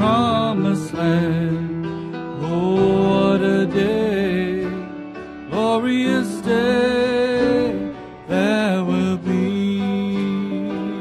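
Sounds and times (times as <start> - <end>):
man singing gospel song: 0.0 - 11.0.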